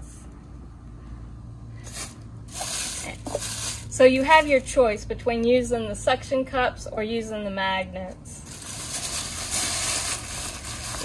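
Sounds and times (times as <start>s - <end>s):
plastic bag rustling: 1.8s - 4.7s, 8.4s - 11.0s.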